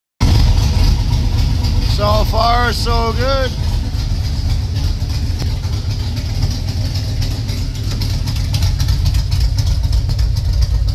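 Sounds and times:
car engine idling: 0:00.2 - 0:10.9.

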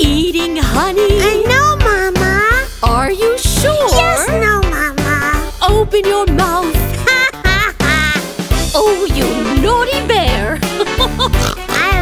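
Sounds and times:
upbeat children's music: 0:00.0 - 0:12.0
cartoon voices sliding pitch: 0:03.6 - 0:05.4.

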